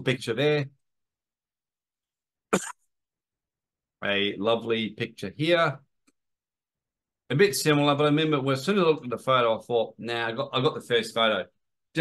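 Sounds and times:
man coughing: 0:02.6 - 0:02.8.

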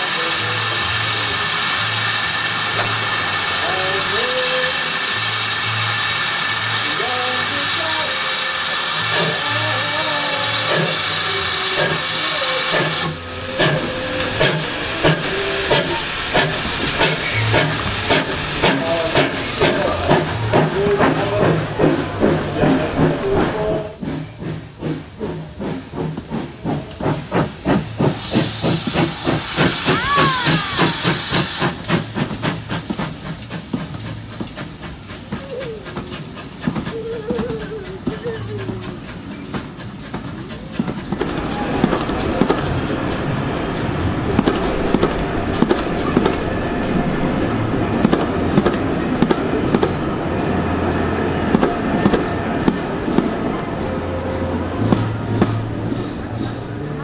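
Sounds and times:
loud burst of steam hiss: 0:00.0 - 0:49.0
locomotive exhaust beats: 0:00.0 - 0:57.0
steam locomotive hissing: 0:00.0 - 0:57.0.

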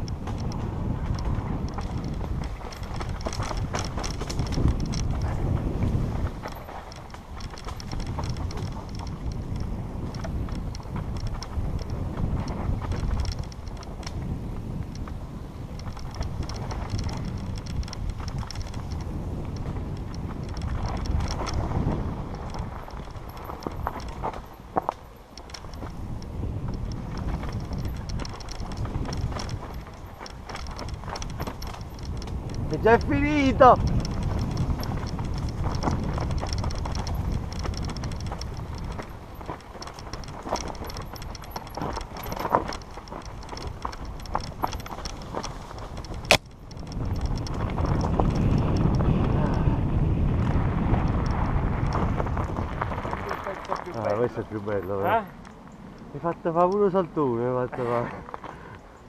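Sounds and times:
bike rattling and knocking: 0:00.0 - 0:57.6
wind buffeting microphone: 0:00.0 - 0:59.0.

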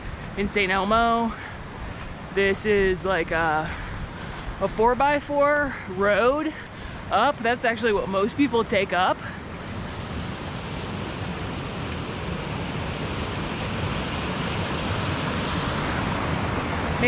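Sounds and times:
waterfall rushing: 0:09.4 - 0:17.0.

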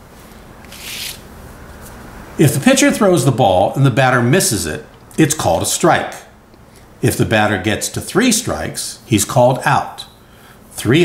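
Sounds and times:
hand rustling over paper: 0:00.1 - 0:02.0.

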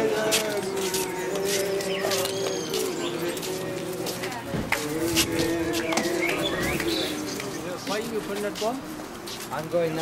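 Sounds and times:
people's voices: 0:00.0 - 0:10.0
bird chirping: 0:05.8 - 0:07.8.

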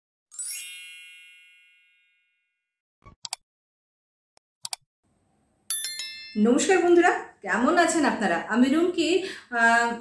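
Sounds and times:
bell-like chime: 0:00.3 - 0:02.7, 0:05.7 - 0:06.7.

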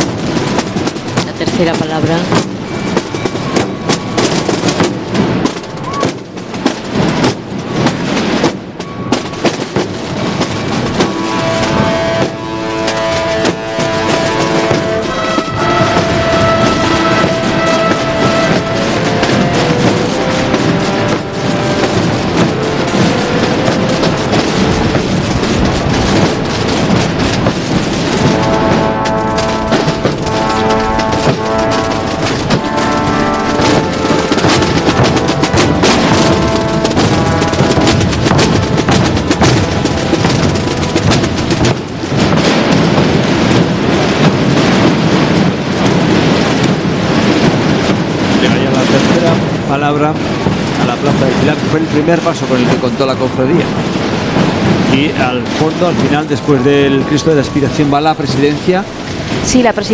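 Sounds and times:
procession drums rolling: 0:00.0 - 0:59.9
trombones playing held melody: 0:10.8 - 0:42.8.

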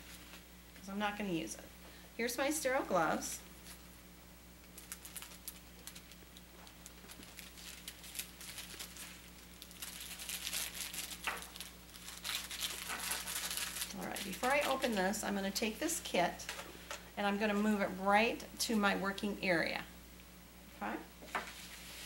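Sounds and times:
paper wrapping crinkling: 0:04.6 - 0:15.1, 0:21.3 - 0:22.0.

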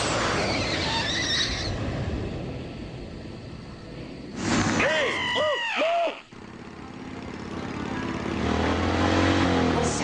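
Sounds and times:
cartoon motorcycle engine: 0:05.4 - 0:10.0.

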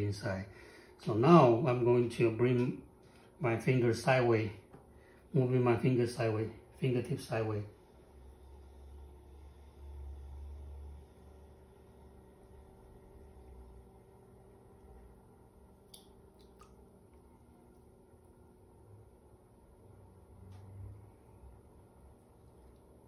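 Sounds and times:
potter's wheel humming: 0:00.0 - 0:23.0.

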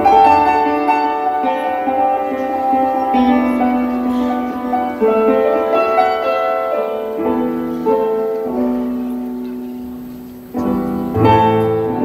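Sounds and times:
ensemble playing slow instrumental: 0:00.0 - 0:12.0.

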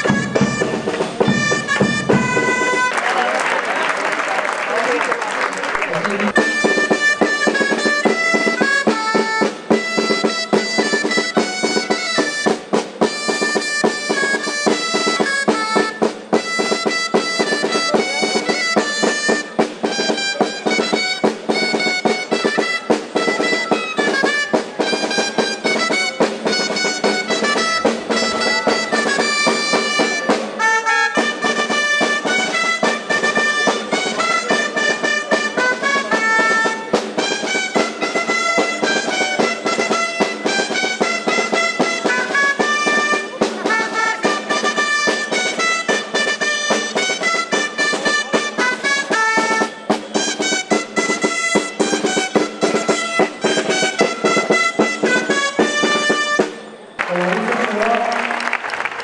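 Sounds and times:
percussive beat: 0:00.0 - 0:03.0, 0:05.8 - 0:58.9
reed pipes playing folk dance tune: 0:00.0 - 0:04.9, 0:05.7 - 0:59.0
crowd applauding: 0:02.6 - 0:06.6, 0:57.0 - 0:59.0.

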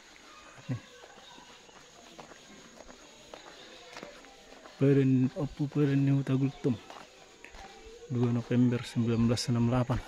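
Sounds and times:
footsteps on road: 0:00.0 - 0:10.0.

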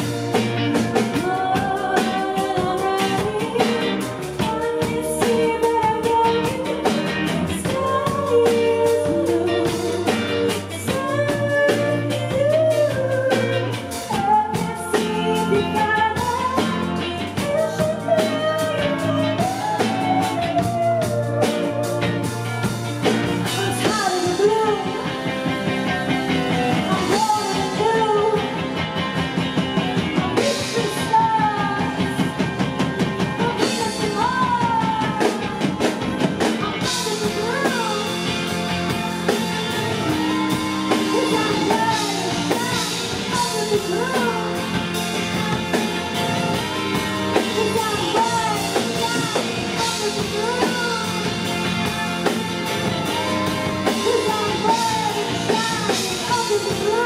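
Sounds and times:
live rock band: 0:00.0 - 0:57.0
woman singing: 0:00.0 - 0:57.0.

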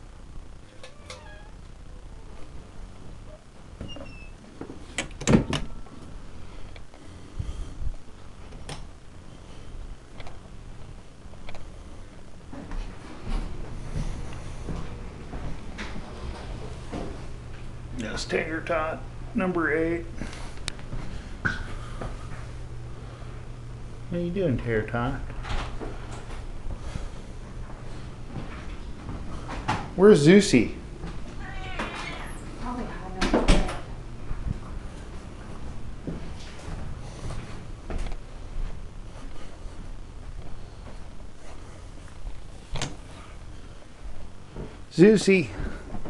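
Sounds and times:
low steady hum: 0:00.0 - 0:46.0.

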